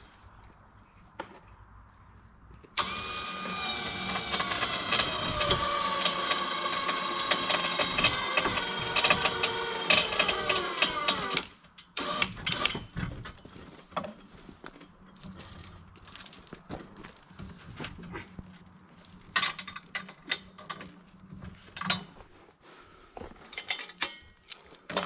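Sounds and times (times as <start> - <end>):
electric winch whine: 2.8 - 12.7
knocks and clinks: 23.5 - 25.0.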